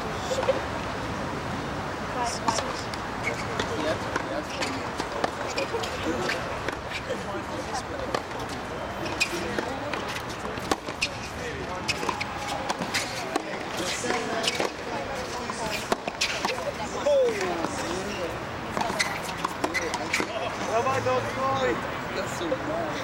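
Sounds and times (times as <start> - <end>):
murmur of voices: 0.0 - 23.0
rackets striking tennis ball: 8.0 - 18.1.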